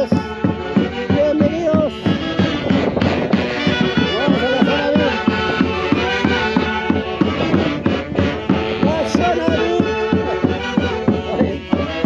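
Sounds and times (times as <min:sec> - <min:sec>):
band playing melodic lines: 0:00.0 - 0:12.0
regular drum beat: 0:00.0 - 0:12.0.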